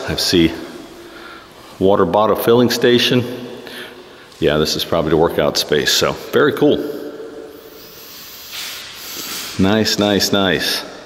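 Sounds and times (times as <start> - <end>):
soft steady hiss: 0.0 - 11.0.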